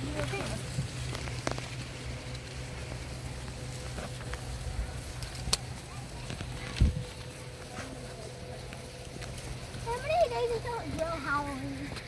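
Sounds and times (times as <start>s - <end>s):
dry stalks and leaves crackling: 0.0s - 12.0s
footsteps on grassy dirt path: 0.0s - 12.0s
low microphone rumble: 0.0s - 12.0s.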